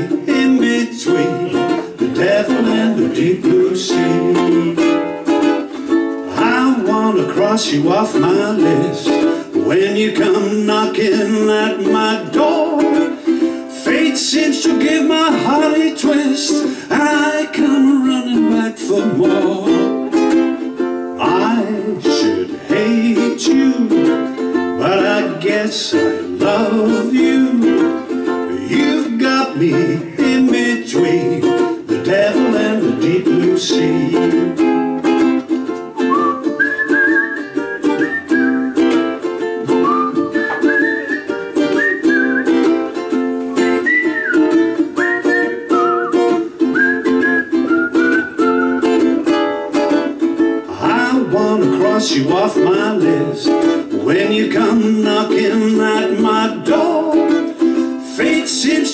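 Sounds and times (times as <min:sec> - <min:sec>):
strummed string instrument: 0:00.0 - 0:58.9
whistled melody: 0:33.2 - 0:50.7.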